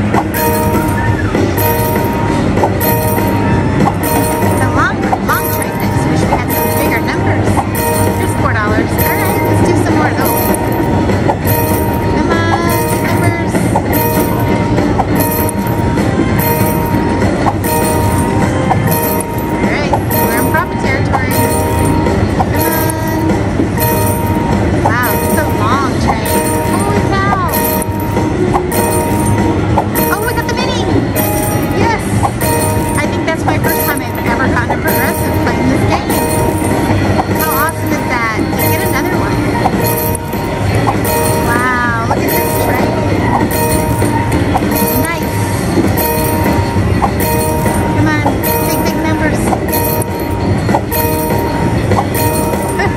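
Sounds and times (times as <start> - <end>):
chimes: 0.0 - 52.9
held steady tone: 0.0 - 52.9
slot machine game music: 0.0 - 52.9.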